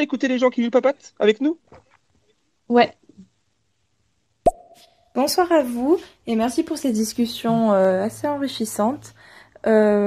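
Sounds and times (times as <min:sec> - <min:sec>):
sharp audio pop: 0:04.5 - 0:04.9.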